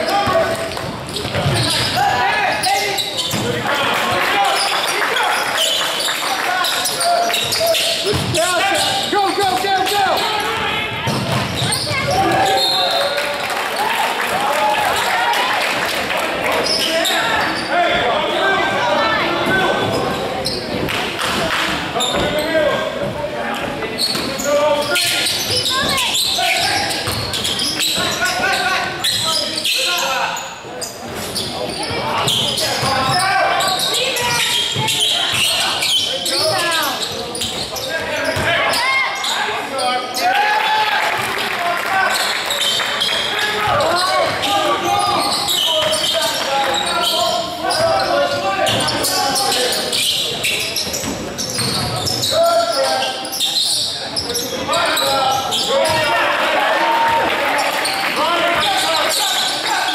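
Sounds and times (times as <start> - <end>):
players and spectators calling: 0.0 - 59.9.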